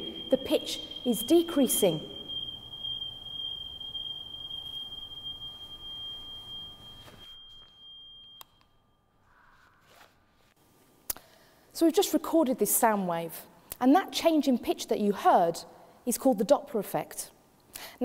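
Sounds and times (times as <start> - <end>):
high-pitched test tone: 0.0 - 8.7.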